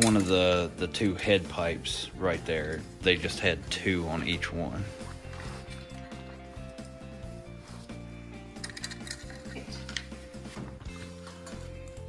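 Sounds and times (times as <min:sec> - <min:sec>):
metal hose clamps clinking: 0:00.0 - 0:01.0, 0:08.5 - 0:10.2, 0:10.8 - 0:12.0
background music: 0:00.0 - 0:12.0.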